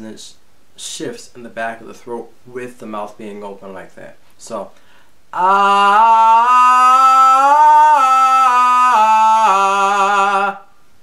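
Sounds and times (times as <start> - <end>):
man singing ah vowel: 5.3 - 10.8.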